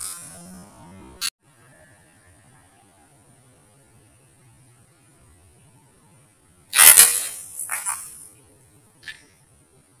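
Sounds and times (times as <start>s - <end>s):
high-pitched insect buzzing: 0.0s - 1.1s.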